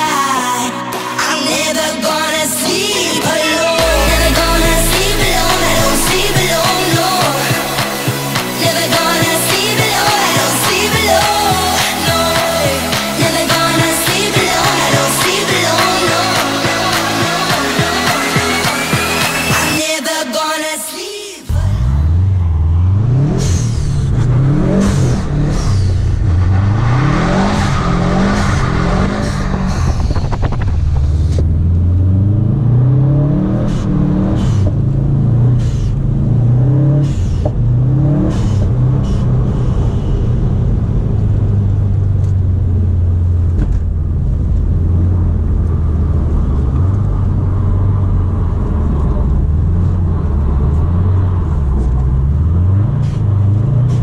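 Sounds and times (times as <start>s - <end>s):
car engine revving: 3.5s - 19.8s, 21.5s - 54.0s
short sharp sounds: 3.8s - 8.6s.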